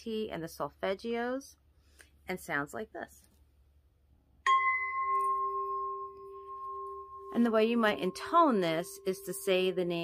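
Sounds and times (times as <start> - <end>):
singing bowl ringing: 4.4 - 10.0.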